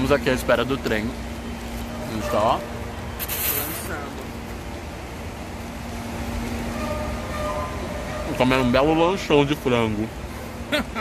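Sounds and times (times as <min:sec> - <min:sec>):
loud hiss: 0:03.2 - 0:04.0.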